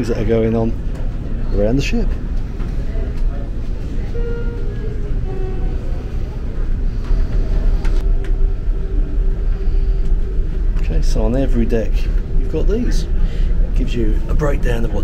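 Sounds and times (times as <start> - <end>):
faint voices: 0.0 - 15.0
steady low rumble: 0.0 - 15.0.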